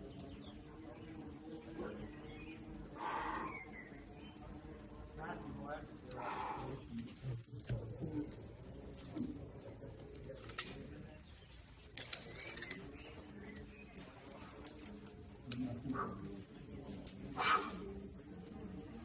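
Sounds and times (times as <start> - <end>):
carabiners clinking: 10.1 - 11.0, 11.8 - 15.1.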